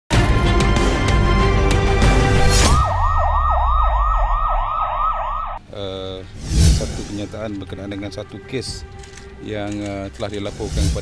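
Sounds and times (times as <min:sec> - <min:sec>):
loud music: 0:00.1 - 0:05.6
electronic siren yelping: 0:02.6 - 0:05.6.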